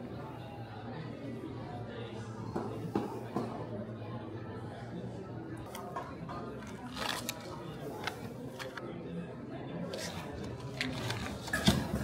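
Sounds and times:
murmur of voices: 0.0 - 12.0
paper bag crinkling: 6.6 - 8.8, 9.9 - 11.7.

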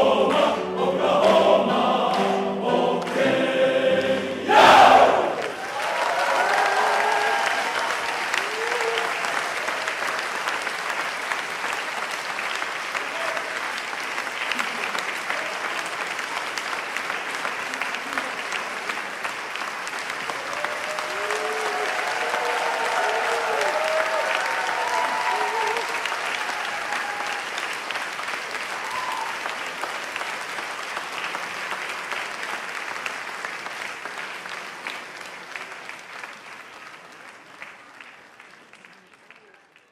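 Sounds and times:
audience applauding: 4.5 - 39.9.

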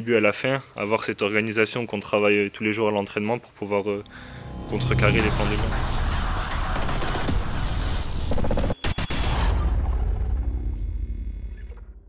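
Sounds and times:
deep rumble: 4.0 - 8.4
low hum: 4.0 - 8.4.

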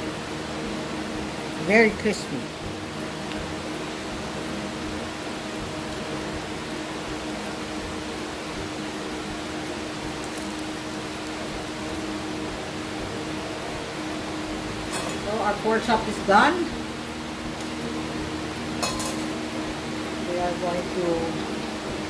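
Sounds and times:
low hum: 0.0 - 22.0
oil sizzling in a frying pan: 0.0 - 22.0.

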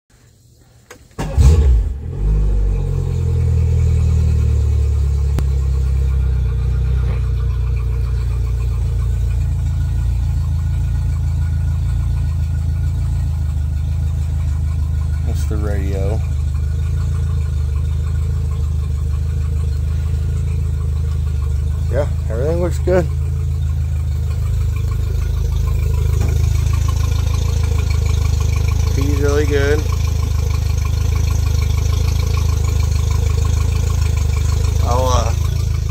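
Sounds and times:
outboard motor starting and idling: 1.1 - 35.9.

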